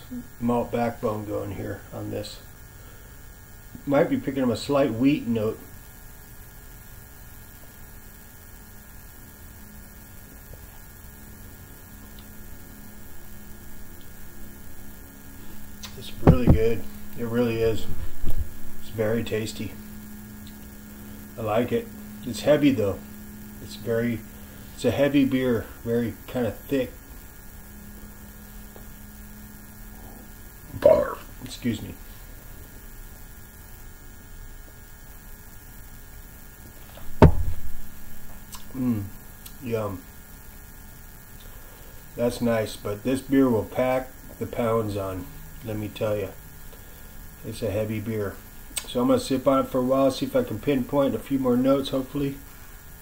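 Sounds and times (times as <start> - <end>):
faint background hiss: 0.0 - 53.0
low electrical hum: 0.0 - 53.0.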